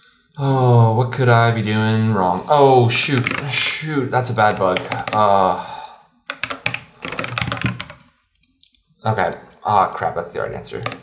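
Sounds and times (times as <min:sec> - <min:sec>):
typing on computer keyboard: 0:03.1 - 0:03.5, 0:04.5 - 0:05.3, 0:06.3 - 0:08.6, 0:10.8 - 0:11.0.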